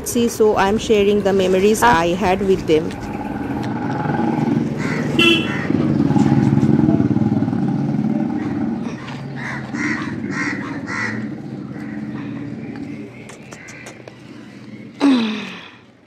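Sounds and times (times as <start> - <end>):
vehicle engine running: 0.0 - 15.7.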